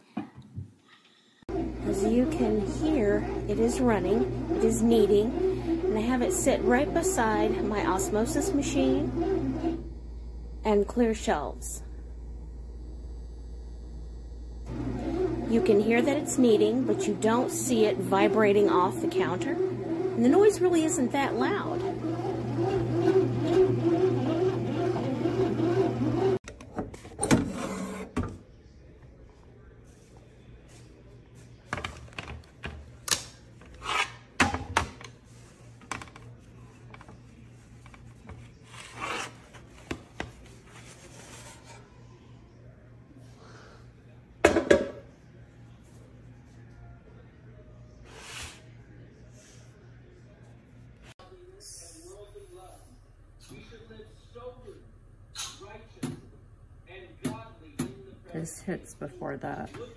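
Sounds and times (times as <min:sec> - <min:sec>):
bread machine motor humming: 0:01.5 - 0:26.4.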